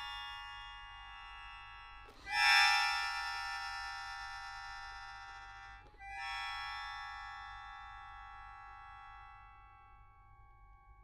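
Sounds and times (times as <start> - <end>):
accordion sustained chord: 0.0 - 11.0.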